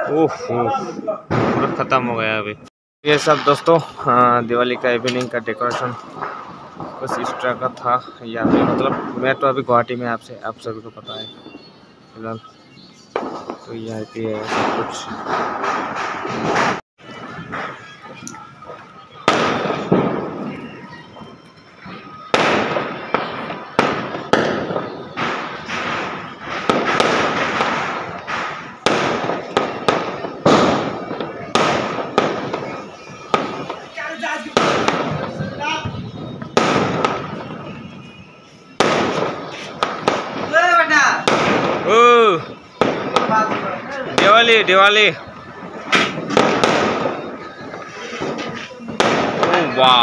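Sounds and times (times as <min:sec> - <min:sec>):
fireworks bangs: 0:00.0 - 0:50.0.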